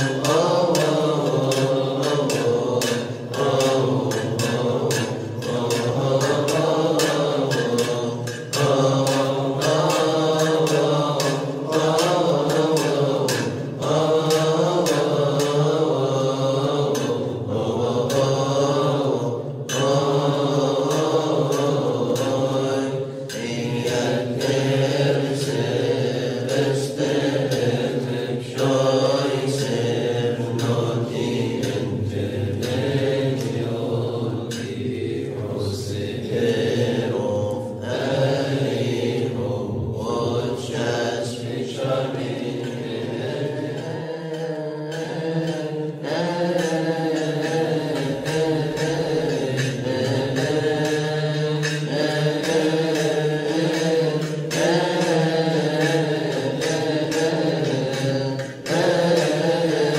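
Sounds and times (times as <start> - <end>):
men singing liturgical chant: 0.0 - 59.9.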